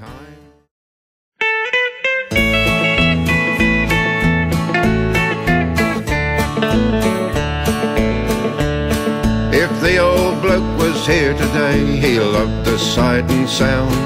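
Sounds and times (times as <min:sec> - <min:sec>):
bass: 0:00.0 - 0:00.7, 0:02.3 - 0:14.0
acoustic guitar: 0:01.4 - 0:14.0.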